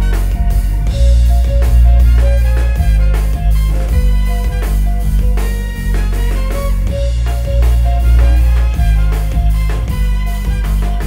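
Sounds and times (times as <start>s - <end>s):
drum kit: 0.0s - 11.0s
electric bass line: 0.0s - 11.0s
electric guitar: 0.0s - 11.0s
saxophone: 0.0s - 11.0s
trumpet: 0.0s - 11.0s.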